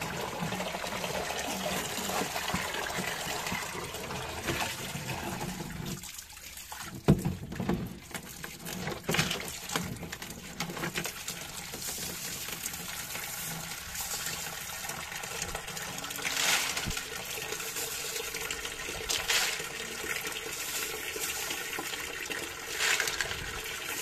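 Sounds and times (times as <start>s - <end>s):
water pouring into plastic tub: 0.0s - 24.0s
pebbles splashing into water: 15.4s - 24.0s.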